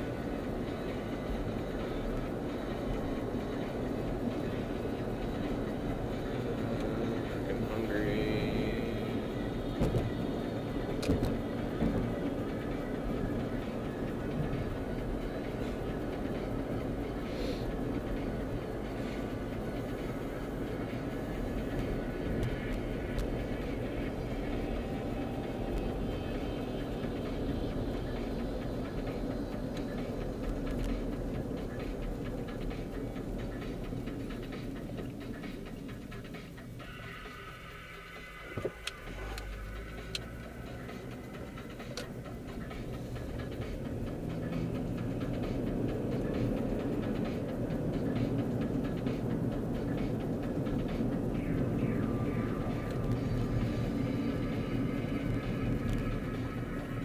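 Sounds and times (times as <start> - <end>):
road and engine rumble in car: 0.0 - 57.0.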